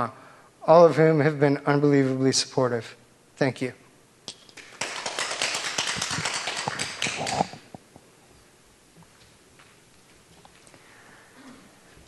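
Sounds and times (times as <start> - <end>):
audience applause: 4.6 - 7.6.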